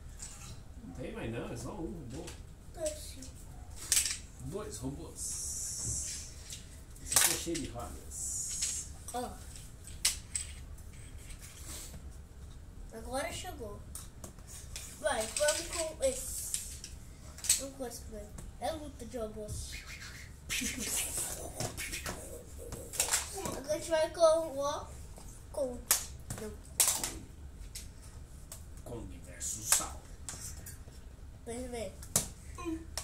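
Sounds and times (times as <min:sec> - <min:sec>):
plastic toys clacking on tile floor: 0:14.8 - 0:17.6.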